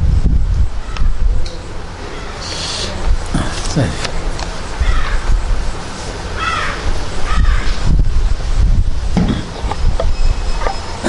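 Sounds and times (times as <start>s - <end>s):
crow cawing: 4.8s - 5.3s, 6.4s - 7.8s.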